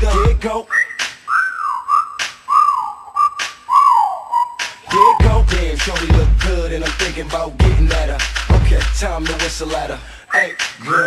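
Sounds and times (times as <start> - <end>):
whistled melody: 0.0 - 5.3, 10.3 - 11.0
sharp percussion hits: 4.6 - 9.8.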